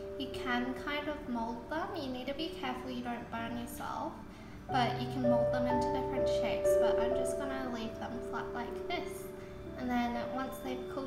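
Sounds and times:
background music: 0:00.0 - 0:11.0
woman's voice: 0:00.2 - 0:11.0.

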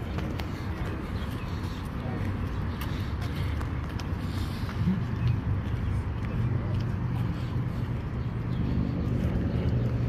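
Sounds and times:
faint voices: 0:00.0 - 0:10.0
street noise: 0:00.0 - 0:10.0.

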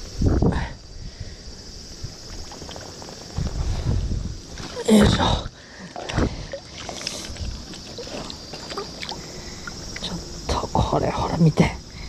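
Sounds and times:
river water sloshing: 0:02.0 - 0:11.2
small splashes and drips: 0:05.8 - 0:10.2.

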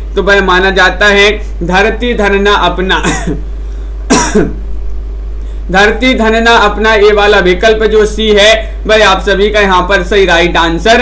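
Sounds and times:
steady low hum: 0:00.0 - 0:11.0
man's cough-like vocal burst: 0:02.9 - 0:03.5, 0:04.1 - 0:04.6.

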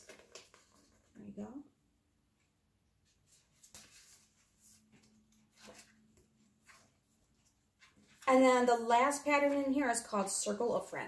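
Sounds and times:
paper pages rustling: 0:03.0 - 0:08.3.

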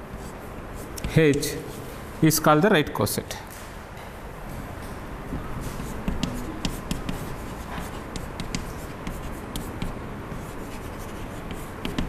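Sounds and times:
chalk writing on a blackboard: 0:00.2 - 0:01.9, 0:05.5 - 0:12.0.

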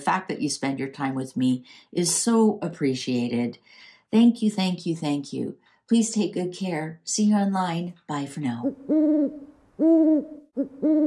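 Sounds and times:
owl hooting: 0:08.6 - 0:11.0.

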